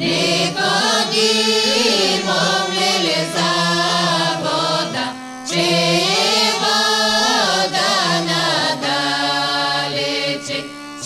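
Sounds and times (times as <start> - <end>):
bagpipe drone: 0.0 - 11.0
folk choir singing in unison: 0.0 - 11.0.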